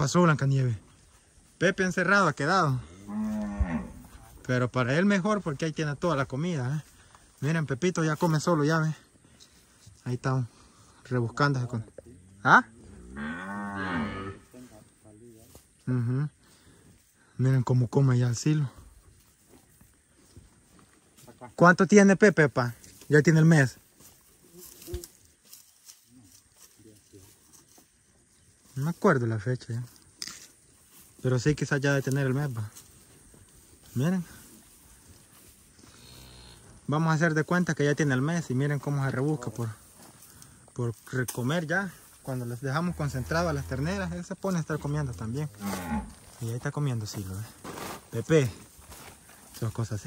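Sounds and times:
cow mooing: 2.8s - 4.0s, 13.0s - 14.5s.

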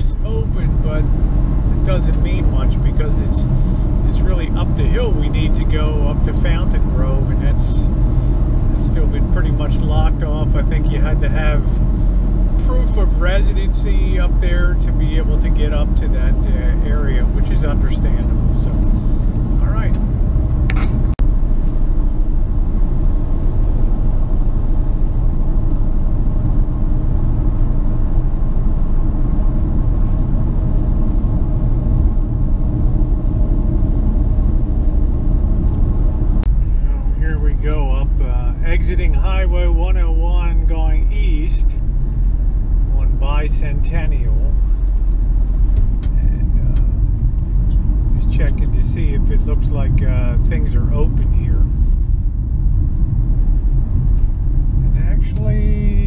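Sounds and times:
car road and engine noise: 0.0s - 56.0s
person talking: 36.8s - 41.8s, 54.9s - 56.0s.

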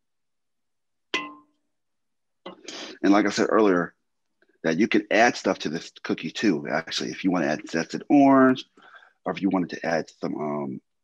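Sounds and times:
metallic clang: 1.2s - 1.4s
brief rasping noise: 2.7s - 3.0s.

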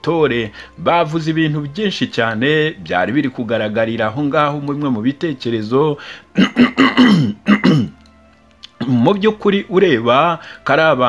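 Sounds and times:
man narrating: 0.0s - 6.1s, 8.7s - 11.0s
faint background music: 0.0s - 11.0s
man coughing: 6.4s - 8.0s.

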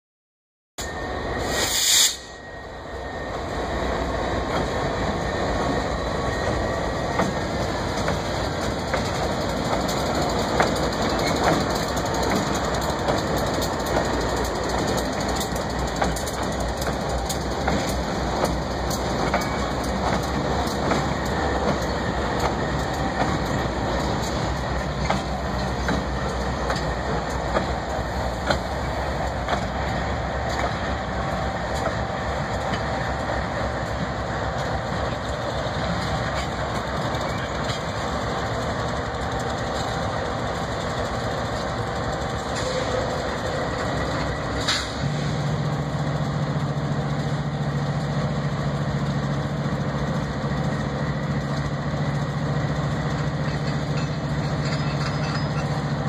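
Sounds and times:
diesel locomotives idling: 0.8s - 56.0s
train wheels clicking on rails: 3.2s - 56.0s.

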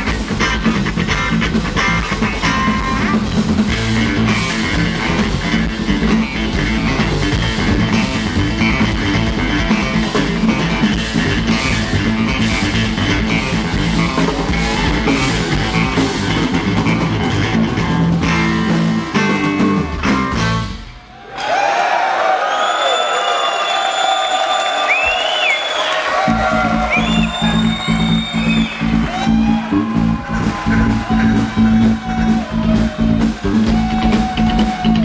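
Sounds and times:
electric guitar lead lines: 0.0s - 21.0s
rock band playing live: 0.0s - 21.1s, 26.2s - 35.0s.

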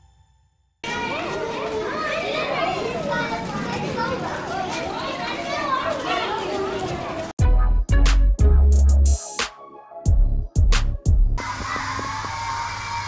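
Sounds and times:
children chattering and calling out: 0.8s - 7.4s.

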